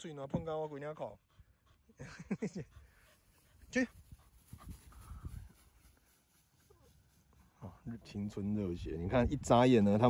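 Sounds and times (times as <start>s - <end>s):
dog panting faintly: 0.5s - 7.6s.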